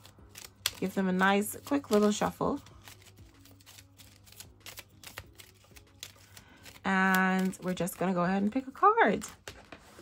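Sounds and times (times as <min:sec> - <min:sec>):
cards being shuffled: 0:00.0 - 0:08.2, 0:09.1 - 0:10.0.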